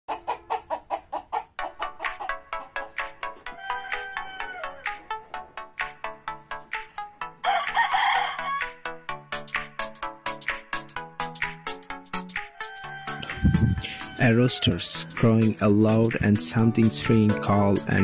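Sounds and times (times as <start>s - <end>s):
music with plucked beat: 1.6s - 7.0s, 8.8s - 14.2s, 15.0s - 18.0s
rooster crowing: 3.5s - 5.1s, 7.4s - 8.8s, 12.5s - 14.8s.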